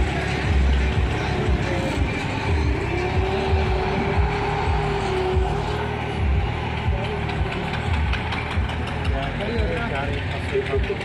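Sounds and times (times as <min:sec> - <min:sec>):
people's voices: 0:00.0 - 0:11.0
tractor engine throbbing: 0:00.0 - 0:11.0.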